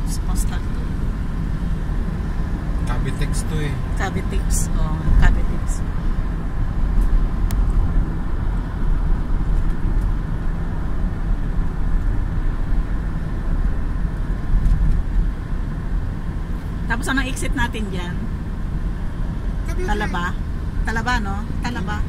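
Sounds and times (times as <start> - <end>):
road and engine rumble in car: 0.0 - 22.0.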